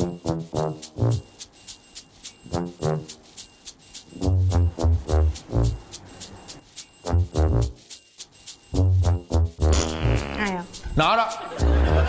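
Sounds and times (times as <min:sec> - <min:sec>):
comedic bouncing music: 0:00.0 - 0:12.0
light ticking beat: 0:00.0 - 0:12.0.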